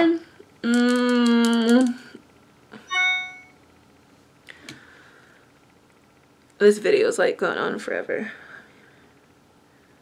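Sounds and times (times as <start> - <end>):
bright ding: 2.9 - 3.6.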